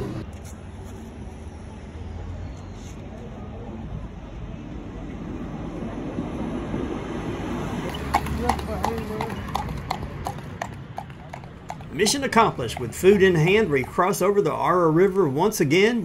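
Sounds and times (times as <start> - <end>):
horse hooves clip-clopping on road: 7.3 - 15.6.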